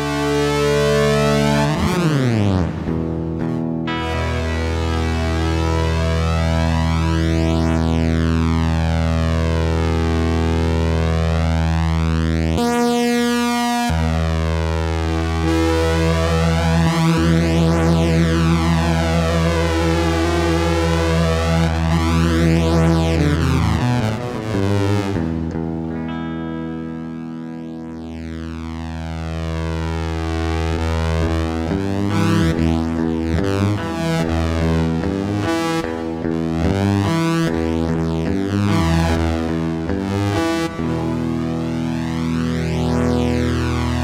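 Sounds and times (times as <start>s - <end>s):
sustained guitar synth note: 0.0s - 44.0s.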